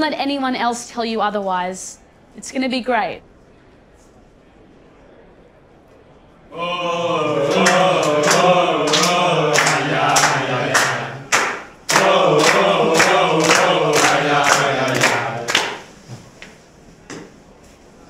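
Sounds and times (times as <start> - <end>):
men singing a chant-like song: 6.5 - 15.8
sharp hand claps: 6.9 - 15.9.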